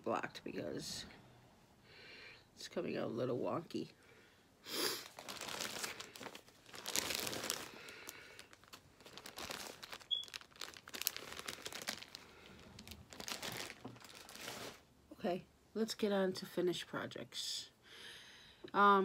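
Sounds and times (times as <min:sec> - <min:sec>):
plastic bag crinkling: 0:05.0 - 0:14.9.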